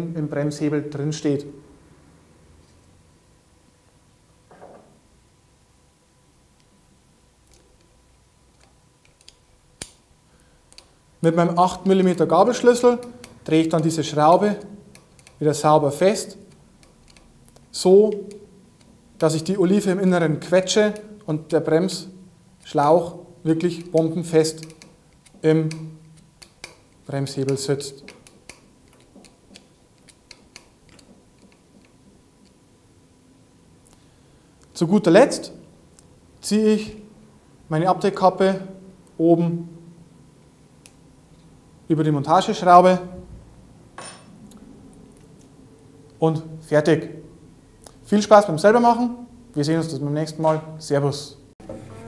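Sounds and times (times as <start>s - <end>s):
wrench clicking against screw: 14.3s - 15.4s, 16.5s - 17.3s, 23.8s - 26.8s.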